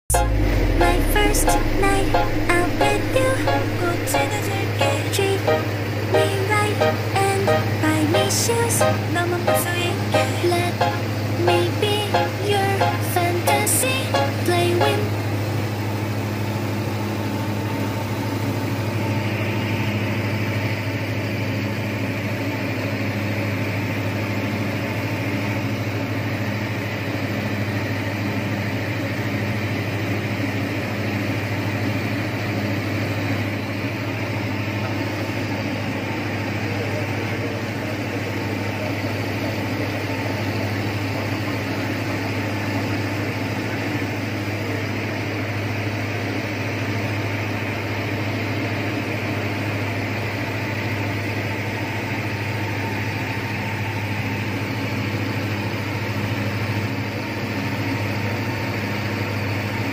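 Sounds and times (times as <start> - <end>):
light aircraft engine drone: 0.1 - 59.9.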